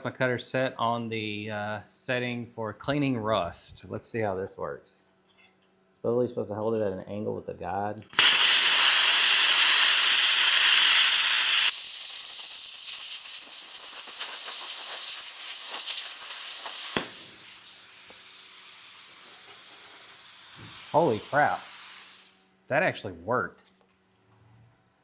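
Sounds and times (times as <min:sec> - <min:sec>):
plasma cutter arc hissing: 0:08.2 - 0:22.4.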